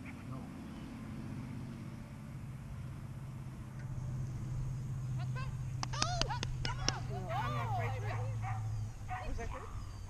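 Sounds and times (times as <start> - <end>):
low steady hum: 0.0 - 10.0
voices: 5.0 - 10.0.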